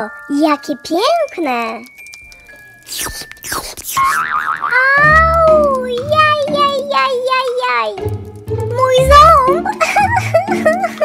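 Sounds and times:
cartoon crack and falling sweep: 2.9s - 6.6s
wobbling boing-like warble: 4.1s - 5.7s.

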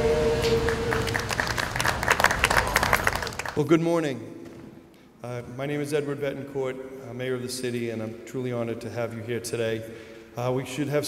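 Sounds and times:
crowd applause: 0.0s - 3.7s.

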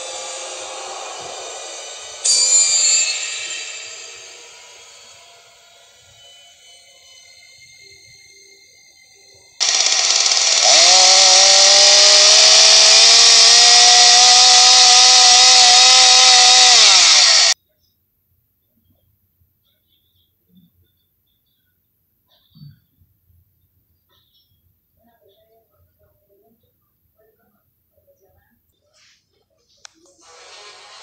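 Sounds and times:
chainsaw revving: 9.6s - 17.6s.

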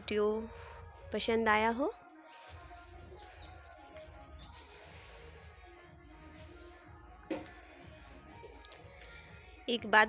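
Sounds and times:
small bird chirping: 3.0s - 5.0s.

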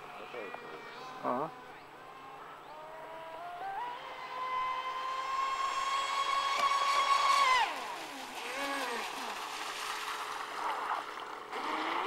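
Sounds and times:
model boat motor whining: 0.0s - 9.4s.

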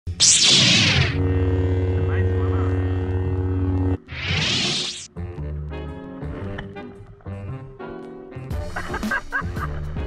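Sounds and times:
lightsaber ignition whoosh: 0.1s - 1.2s, 4.1s - 5.1s
steady electric hum: 0.2s - 5.1s.

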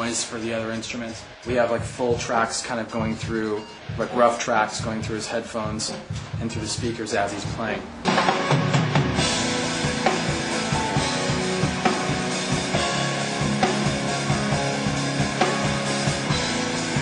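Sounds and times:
drum kit playing: 0.0s - 17.0s
rock music: 0.0s - 17.0s.

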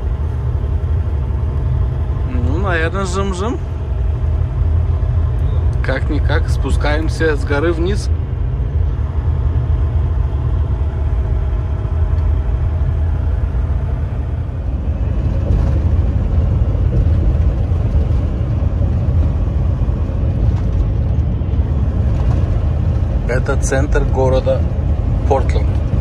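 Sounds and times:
truck engine and road rumble: 0.0s - 26.0s.

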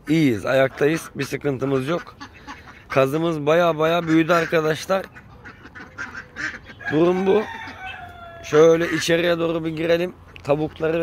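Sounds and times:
ducks calling: 0.0s - 11.0s
goose calling: 0.1s - 11.0s.

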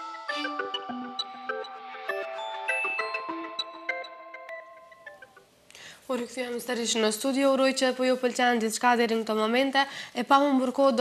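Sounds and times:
electronic theme jingle: 0.0s - 5.5s.

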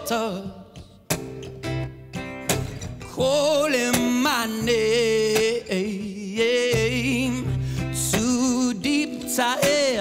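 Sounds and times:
man singing: 0.0s - 1.2s, 3.0s - 10.0s
acoustic guitar chords: 0.0s - 10.0s.

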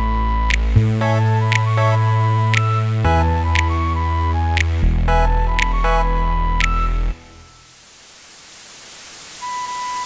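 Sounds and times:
white-noise riser hiss: 7.4s - 10.0s.

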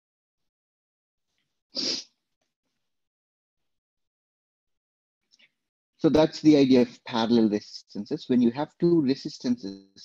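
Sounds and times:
person sneezing: 1.8s - 2.0s.

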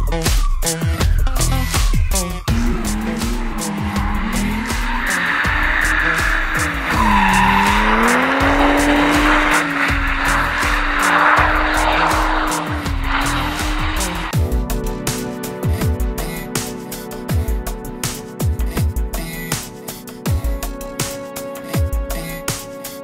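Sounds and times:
music with a steady beat: 0.0s - 23.0s
tyres squealing: 2.4s - 14.3s
car engine revving high: 2.5s - 14.4s.

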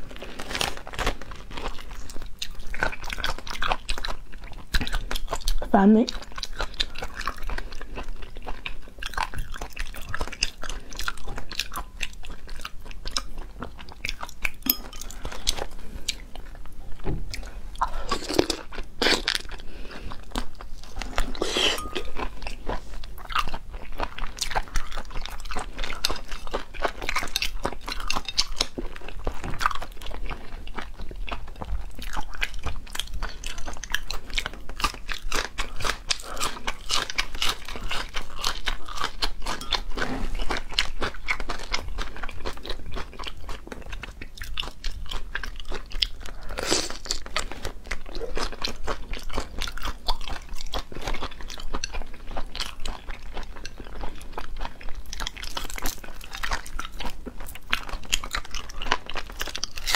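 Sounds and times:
chewing and wet mouth sounds: 0.0s - 59.9s.

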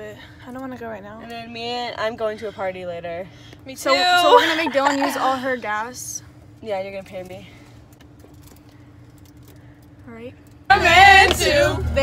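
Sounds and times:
road and engine rumble: 0.0s - 12.0s
thin steady hum: 0.0s - 12.0s.

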